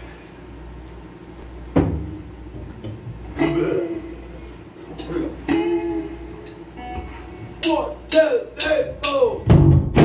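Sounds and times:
amplifier electrical hum: 0:00.0 - 0:10.0.

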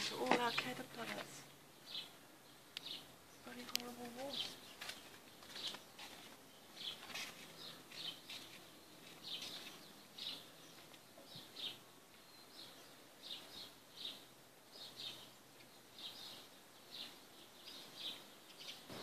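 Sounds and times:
small bird chirping: 0:00.0 - 0:19.0.

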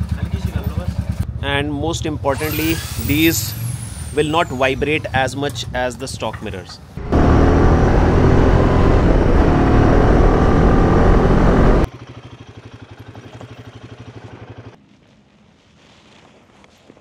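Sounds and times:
motorcycle engine idling: 0:00.0 - 0:01.5, 0:11.9 - 0:14.8
motorcycle engine pulling: 0:02.4 - 0:05.1, 0:07.0 - 0:14.8.

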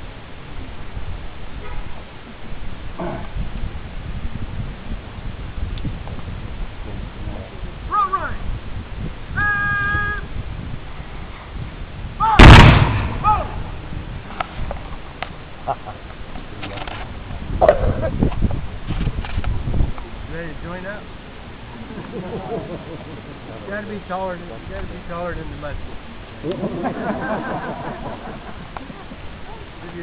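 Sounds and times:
person shouting a call: 0:07.9 - 0:08.5, 0:09.3 - 0:10.3, 0:12.2 - 0:12.5, 0:13.2 - 0:13.6
musket volley: 0:12.3 - 0:13.7
faint scattered gunshots: 0:12.4 - 0:13.2.

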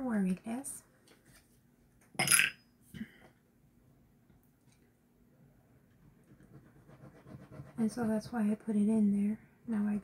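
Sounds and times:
cap clinking in glass vase: 0:02.2 - 0:02.6.

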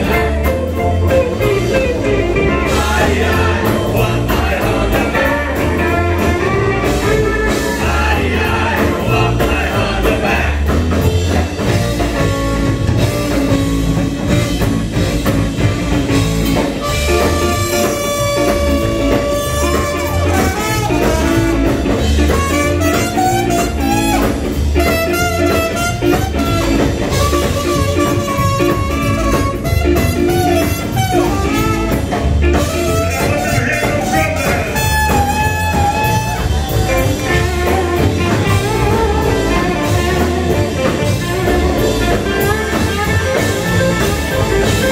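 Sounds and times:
bass guitar: 0:00.0 - 0:44.9
drums: 0:00.0 - 0:44.9
electric guitar: 0:00.0 - 0:44.9
rock band playing: 0:00.0 - 0:44.9
trumpet: 0:16.8 - 0:44.9.

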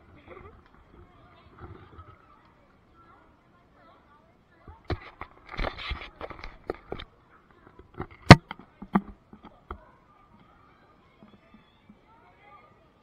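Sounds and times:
camera being handled: 0:04.9 - 0:07.1.

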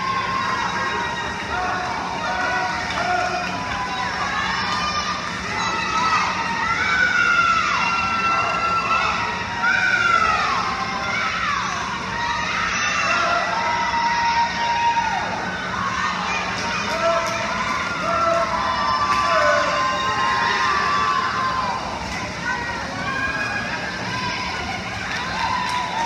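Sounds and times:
crowd shouting and cheering: 0:00.0 - 0:26.0.

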